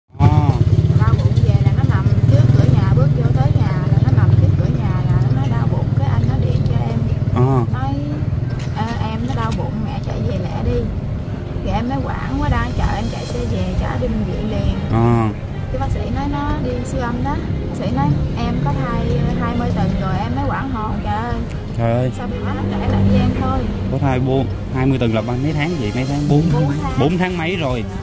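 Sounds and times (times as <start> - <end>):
vehicle engine rumble: 0.1 - 28.0
woman talking: 0.4 - 10.9, 11.6 - 21.5, 22.2 - 23.8, 26.3 - 27.4.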